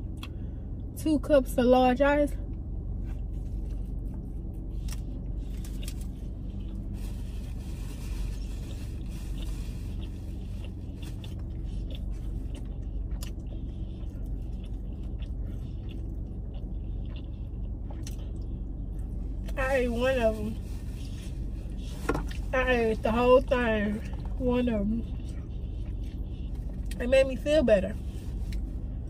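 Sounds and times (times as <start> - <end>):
low rumble in car cabin: 0.0 - 29.0
faint wrapper rustling: 5.4 - 12.5, 19.8 - 22.6, 28.0 - 28.8
chewing and biting food: 8.3 - 19.6, 25.0 - 27.0.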